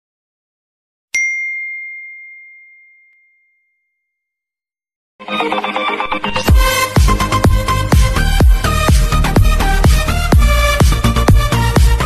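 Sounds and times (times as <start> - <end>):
notification bell ding: 1.2 - 4.2.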